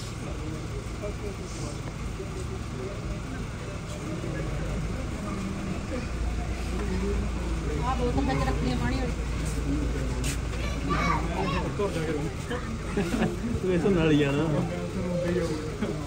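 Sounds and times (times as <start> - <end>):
people talking quietly: 0.0 - 16.0.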